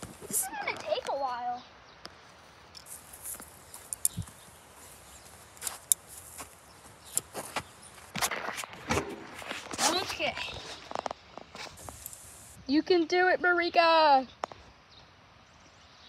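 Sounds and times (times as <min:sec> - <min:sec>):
footsteps on hard ground: 0:02.1 - 0:12.3
sharp clicks: 0:02.8 - 0:04.4.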